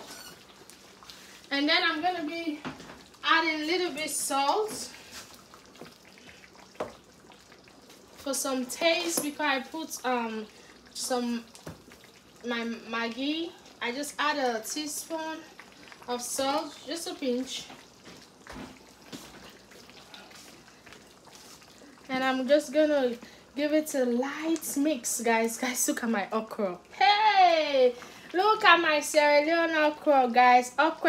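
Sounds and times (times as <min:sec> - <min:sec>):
soup simmering and bubbling: 0:00.0 - 0:31.0.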